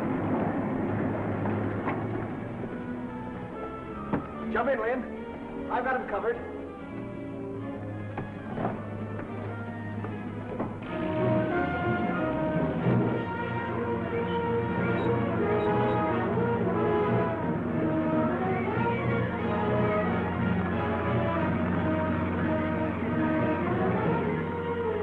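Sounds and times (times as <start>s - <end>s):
orchestral film music with brass: 0.0s - 25.0s.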